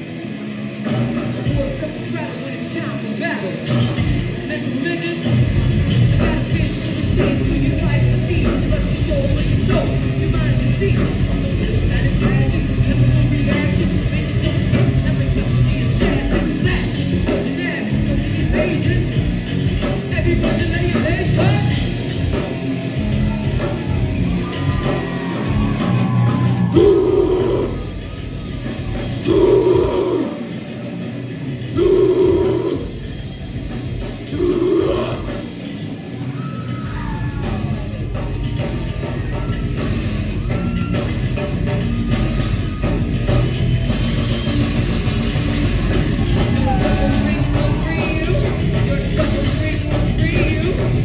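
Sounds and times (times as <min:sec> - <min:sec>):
bass guitar: 0:00.0 - 0:51.0
distorted electric guitar: 0:00.0 - 0:51.0
drums: 0:00.0 - 0:51.0
metal band playing live: 0:00.0 - 0:51.0
growled vocals: 0:26.7 - 0:27.8, 0:29.2 - 0:30.5, 0:31.7 - 0:33.0, 0:34.3 - 0:35.5.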